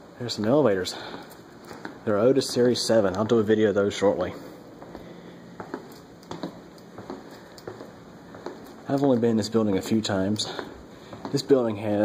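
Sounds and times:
faint steady hum: 0.0s - 12.0s
footsteps on hard floor: 4.8s - 11.7s.

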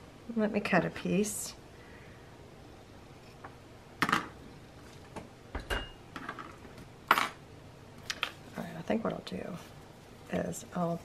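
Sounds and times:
scissors clattering on wooden table: 5.6s - 7.4s.

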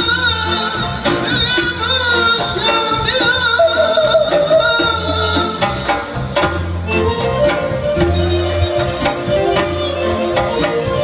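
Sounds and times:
band playing: 0.0s - 11.0s
frame drums: 0.0s - 11.0s.

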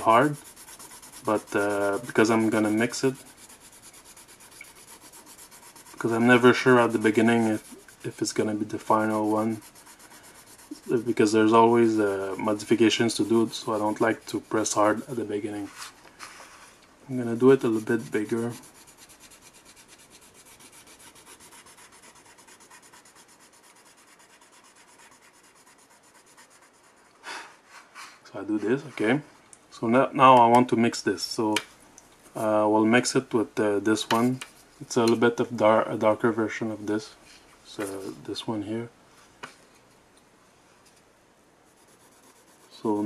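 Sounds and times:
pencil scratching on paper: 0.0s - 15.6s, 17.1s - 27.2s, 41.7s - 43.0s.

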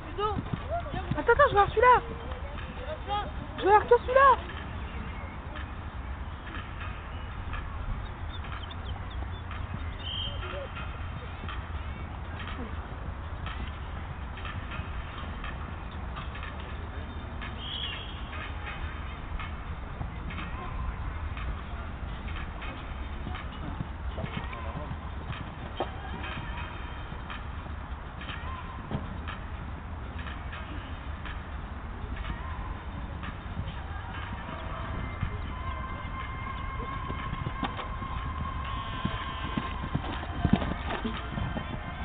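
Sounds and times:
horse hoofbeats on sand: 0.0s - 16.8s, 17.4s - 31.5s, 32.2s - 42.0s.

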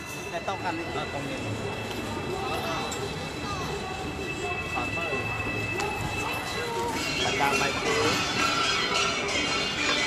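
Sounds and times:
people talking: 0.2s - 9.8s.

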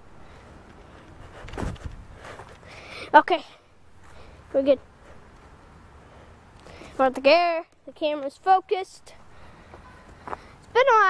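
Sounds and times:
handheld camera jostling: 0.6s - 2.7s
person landing on dirt: 1.4s - 2.6s.

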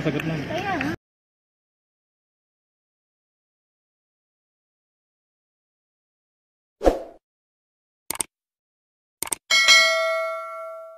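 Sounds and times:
short clicks: 8.1s - 8.3s, 9.2s - 9.4s
bell-like ding: 9.5s - 10.9s.

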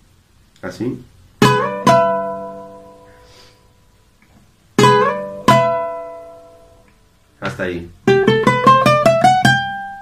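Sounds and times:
guitar played with a pick: 1.4s - 3.4s, 4.8s - 10.0s.

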